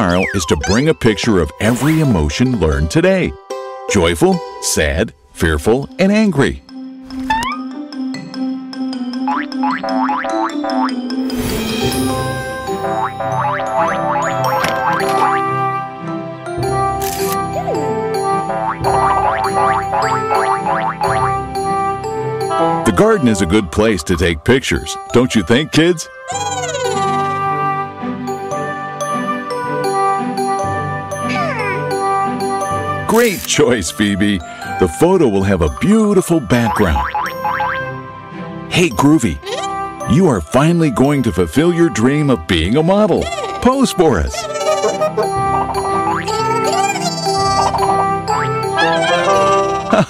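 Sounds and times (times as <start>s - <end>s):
upbeat cartoon music: 0.0s - 50.0s
springy boing sound effects: 18.6s - 21.3s.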